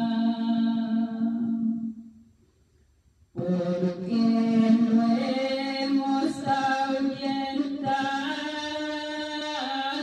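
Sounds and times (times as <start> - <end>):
woman singing: 0.0 - 2.0, 3.4 - 10.0.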